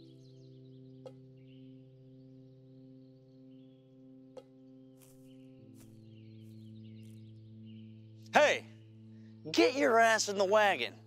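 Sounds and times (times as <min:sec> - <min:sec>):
droning film score chords: 0:00.0 - 0:11.0
faint bird chirps: 0:00.0 - 0:11.0.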